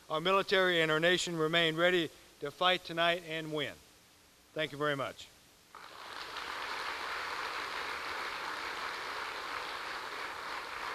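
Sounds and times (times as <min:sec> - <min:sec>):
audience applause: 0:05.8 - 0:10.9.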